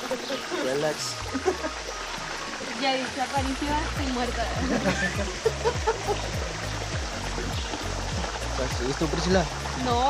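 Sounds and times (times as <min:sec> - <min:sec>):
background music with low bass: 0:00.0 - 0:10.0
mountain stream flowing: 0:00.0 - 0:10.0.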